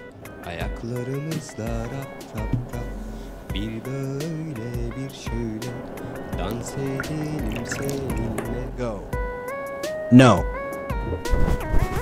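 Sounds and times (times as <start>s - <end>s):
background music: 0.0s - 12.0s
water pouring into bowl: 3.6s - 8.7s.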